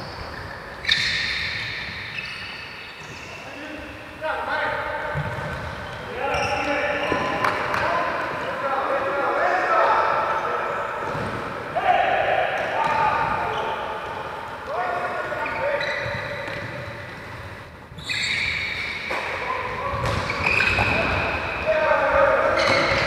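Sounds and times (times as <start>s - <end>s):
players shouting in a hall: 6.1s - 16.0s.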